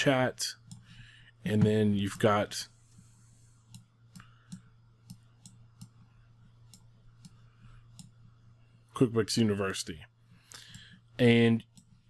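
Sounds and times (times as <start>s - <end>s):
low steady hum: 0.0s - 12.0s
faint mouse clicks: 3.7s - 6.1s, 6.7s - 8.2s, 11.7s - 12.0s.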